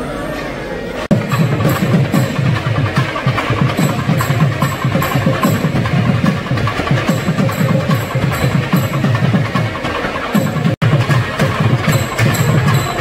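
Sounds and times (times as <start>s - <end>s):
cymbal clashes: 1.1s - 13.0s
fast dense drumming: 1.1s - 13.0s.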